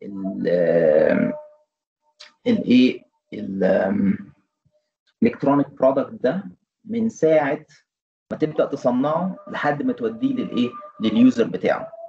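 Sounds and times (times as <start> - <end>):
man's drawn-out hesitation sound: 0.0 - 1.4, 2.2 - 4.2, 8.3 - 11.9.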